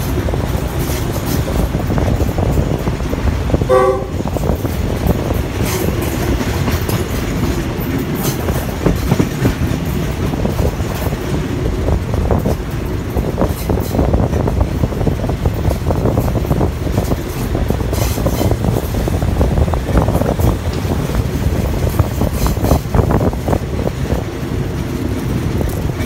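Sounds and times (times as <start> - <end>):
rushing air: 0.0 - 26.0
train rumbling: 0.0 - 26.0
wheels clicking on rails: 0.0 - 26.0.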